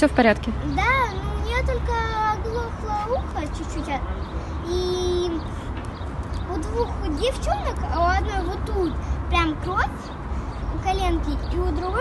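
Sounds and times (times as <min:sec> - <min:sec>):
young girl speaking: 0:00.6 - 0:05.5, 0:06.4 - 0:12.0.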